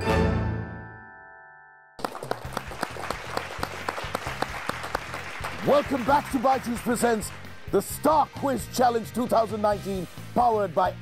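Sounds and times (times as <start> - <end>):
applause: 2.0 - 8.7.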